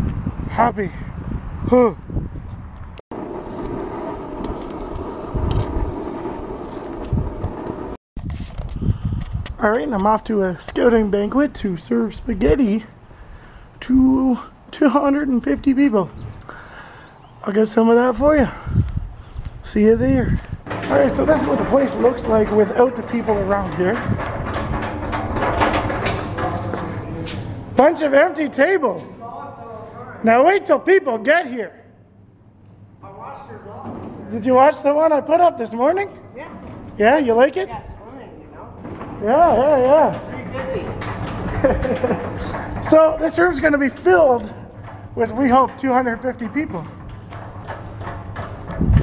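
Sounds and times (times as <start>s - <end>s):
wind noise on microphone: 0.0s - 11.4s, 18.1s - 26.8s, 47.0s - 49.0s
low thumps: 3.1s - 8.0s
room noise: 19.7s - 31.9s, 32.6s - 49.0s.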